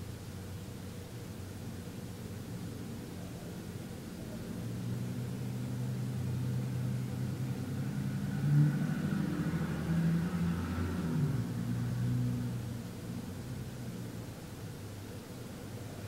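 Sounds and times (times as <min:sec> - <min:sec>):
vehicle engine hum: 0:02.5 - 0:16.0.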